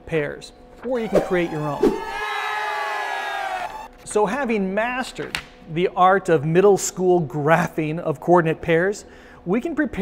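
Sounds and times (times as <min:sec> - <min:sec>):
long shout-like cry: 0:01.0 - 0:03.9.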